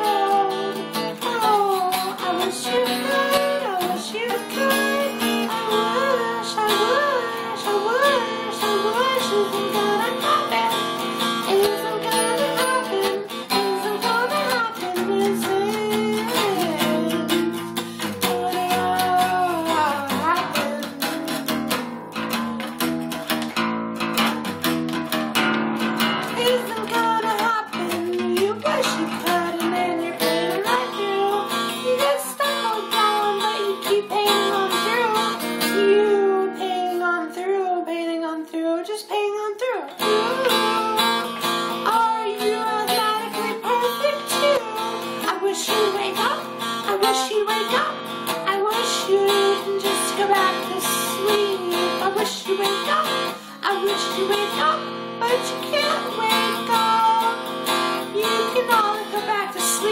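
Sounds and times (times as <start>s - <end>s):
man singing: 0.0s - 10.8s, 11.5s - 21.7s, 26.4s - 35.0s
acoustic guitar strumming: 0.0s - 38.2s, 39.8s - 59.9s.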